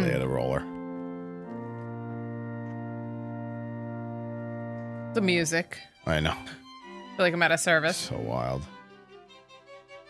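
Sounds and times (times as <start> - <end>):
organ playing slow chords: 0.0 - 5.3.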